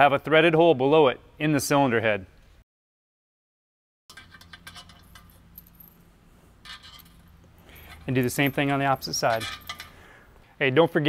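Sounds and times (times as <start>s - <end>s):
small metallic clinks: 4.1s - 10.1s.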